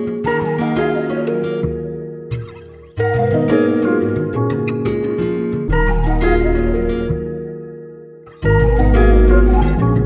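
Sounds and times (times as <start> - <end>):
synth harp plucked melody: 0.0 - 10.0.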